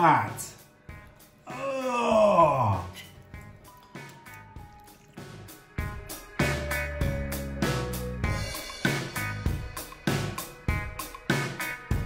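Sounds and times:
man groaning: 1.5s - 2.8s
music with guitar and drums: 5.2s - 12.0s.

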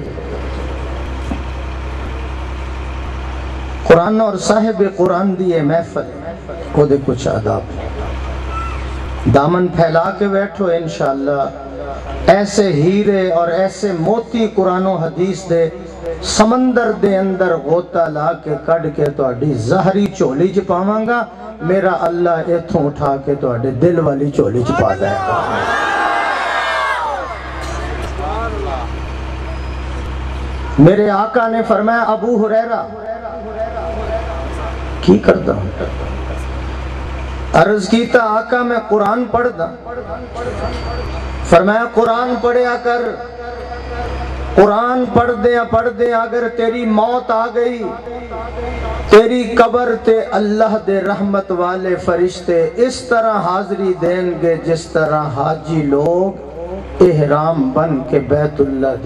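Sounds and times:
low hum: 0.0s - 19.0s, 24.8s - 52.9s.

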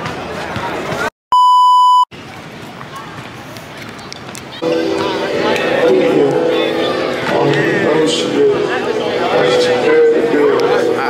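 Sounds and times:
outdoor crowd voices: 0.0s - 1.1s, 2.1s - 11.0s
high test-tone beep: 1.3s - 2.1s.

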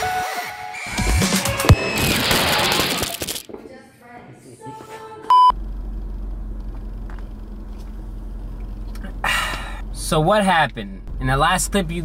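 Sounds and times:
burst of noise: 1.1s - 3.9s
short loud electronic beep: 1.6s - 3.0s, 5.3s - 5.6s.

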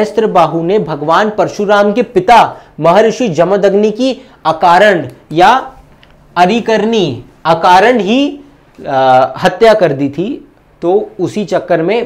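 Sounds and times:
man lecturing: 0.0s - 12.0s.

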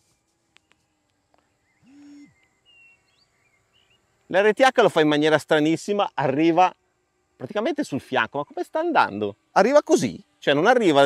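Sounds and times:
faint birds chirping: 0.0s - 11.0s.

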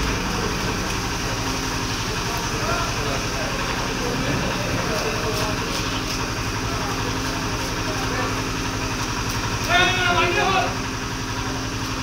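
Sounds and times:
engine idling: 0.0s - 12.0s
man calling out loudly: 9.6s - 10.8s.

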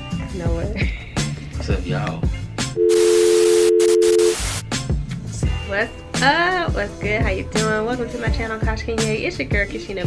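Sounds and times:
two-pitch test tone: 2.8s - 4.4s
tv static hiss: 2.9s - 4.6s
background music with a beat: 3.9s - 10.0s.

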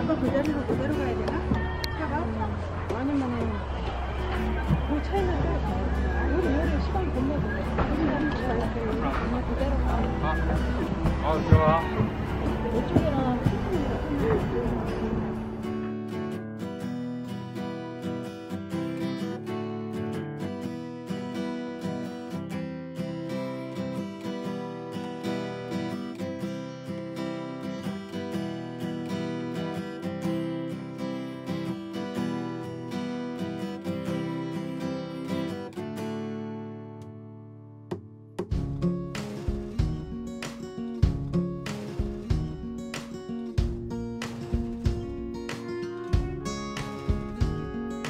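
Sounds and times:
acoustic guitar music: 0.0s - 48.0s.

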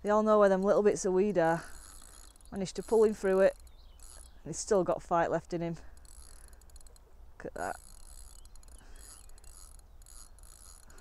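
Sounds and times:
fishing reel ticking: 0.5s - 4.7s, 5.6s - 11.0s.

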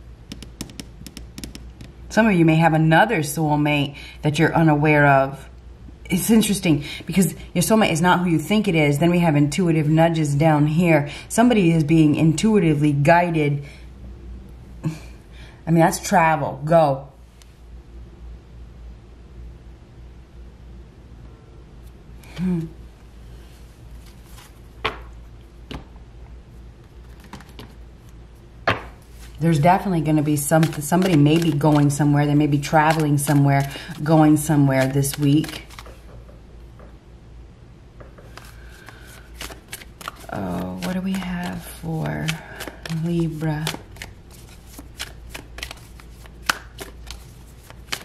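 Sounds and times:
low steady hum: 0.0s - 48.0s
cards being shuffled: 23.9s - 25.1s, 26.8s - 36.2s, 38.2s - 48.0s
sharp card clicks: 30.6s - 31.9s.

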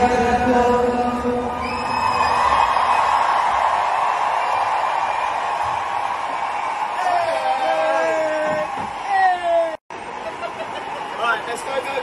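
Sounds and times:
stadium crowd cheering: 1.4s - 12.0s.

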